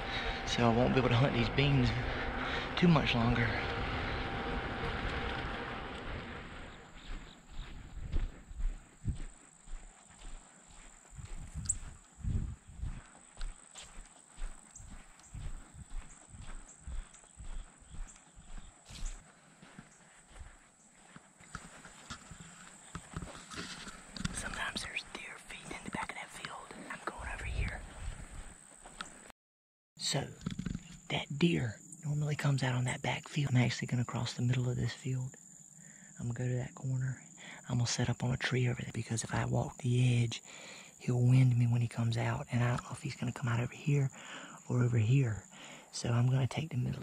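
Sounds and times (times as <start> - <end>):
faint high whine: 0.0 - 19.2
footsteps on sandy dirt: 0.0 - 29.3.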